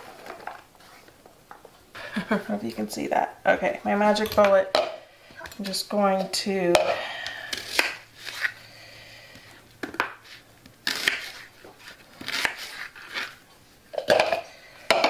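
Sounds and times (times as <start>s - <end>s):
knife slicing onion on board: 7.5s - 8.5s, 10.0s - 13.4s.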